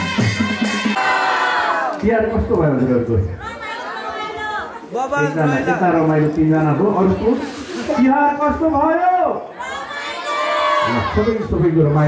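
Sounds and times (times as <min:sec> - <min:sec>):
crowd chatter: 0:00.0 - 0:12.0
man talking over loudspeaker: 0:02.0 - 0:03.4, 0:04.9 - 0:09.5, 0:10.8 - 0:12.0.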